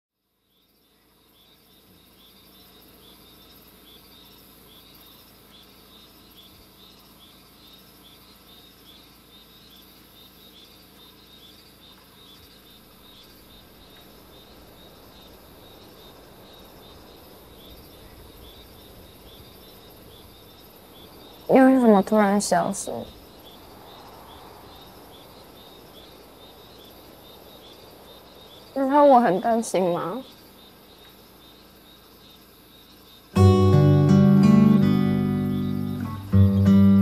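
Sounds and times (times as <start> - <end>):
insect chirps: 0.1 - 37.0
soft steady hiss: 0.1 - 37.0.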